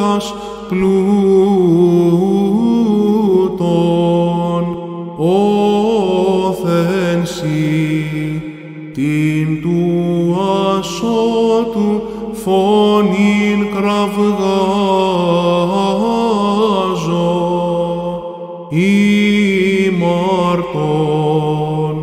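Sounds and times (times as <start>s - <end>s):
man singing chant: 0.0s - 22.0s.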